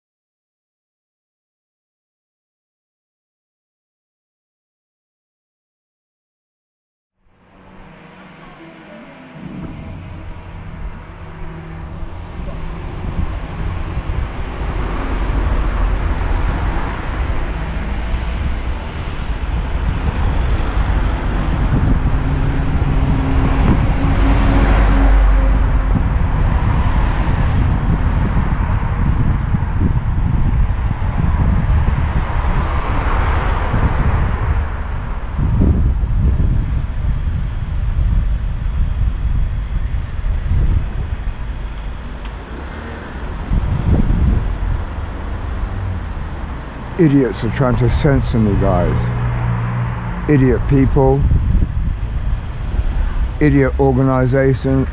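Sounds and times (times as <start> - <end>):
street traffic noise: 7.2 - 54.9
wind rumbling on microphone: 7.3 - 54.9.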